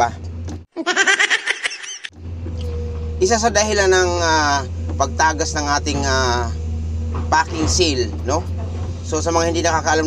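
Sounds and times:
backhoe engine running: 0.0 - 0.7, 2.1 - 10.0
burst of laughter: 0.8 - 2.1.

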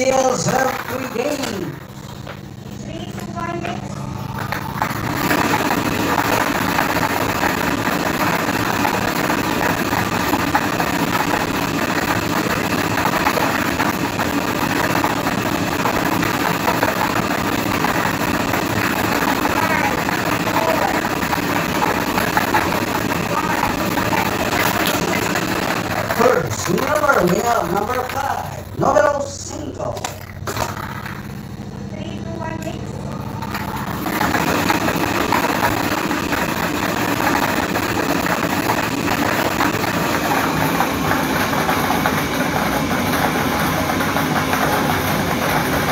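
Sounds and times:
plastic balls clattering in drum: 4.4 - 31.4, 33.4 - 45.9.

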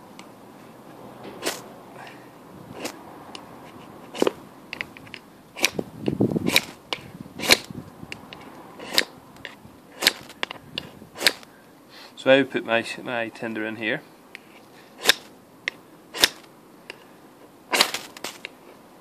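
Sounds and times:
fire steel scraping on knife: 1.2 - 1.7, 2.7 - 7.7, 8.3 - 11.4, 14.4 - 15.3, 16.1 - 16.5, 17.7 - 18.5.

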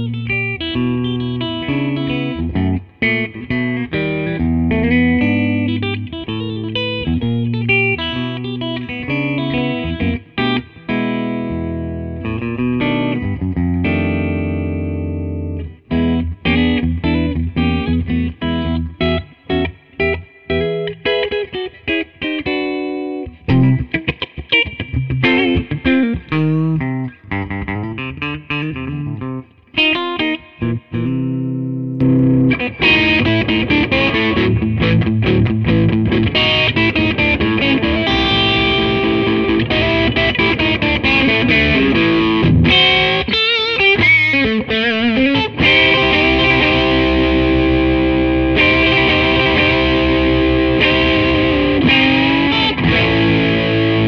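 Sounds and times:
electric guitar through amp: 0.0 - 54.0.

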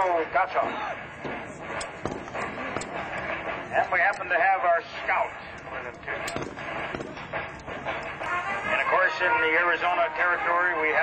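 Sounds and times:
man speaking over loudspeaker: 0.0 - 1.0, 3.7 - 6.4, 8.6 - 11.0
horse hooves clip-clopping: 0.9 - 10.9.

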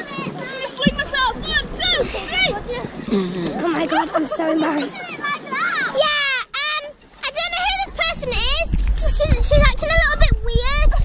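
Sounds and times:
low rumble: 0.8 - 3.1.

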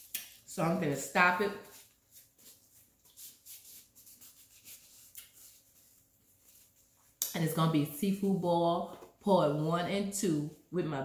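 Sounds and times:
soft paper rustles: 1.6 - 7.2.

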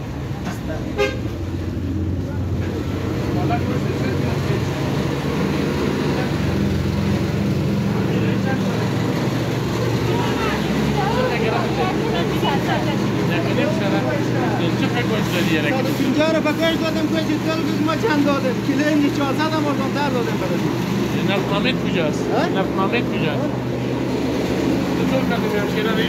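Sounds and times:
people talking: 2.2 - 5.2, 7.4 - 23.6, 24.9 - 26.0.

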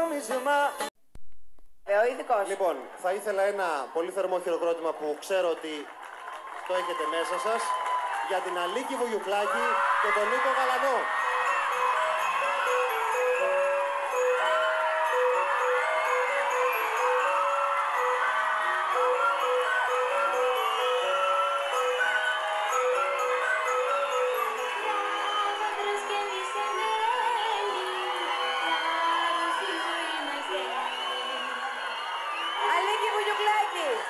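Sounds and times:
crowd cheering and calling out: 1.9 - 34.0
bell-like studio music: 8.2 - 34.0.

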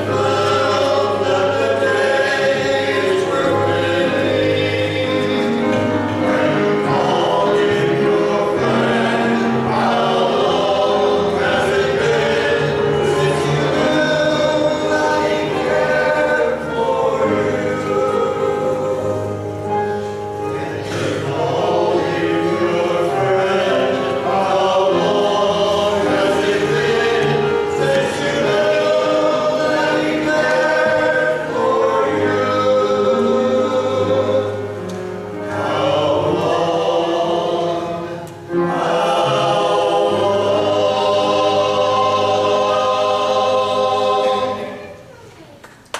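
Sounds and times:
men's choir singing in harmony: 0.0 - 45.1.

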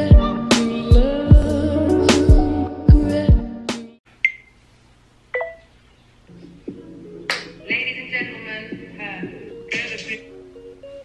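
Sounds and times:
soft music with light beat: 0.0 - 4.0, 6.3 - 11.0.

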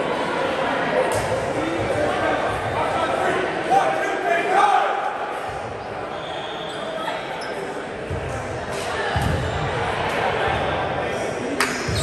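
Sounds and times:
indistinct echoing voices: 0.0 - 12.0.

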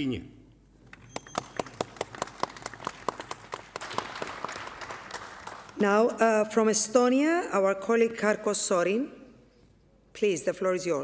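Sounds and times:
audience applause: 1.1 - 5.8.

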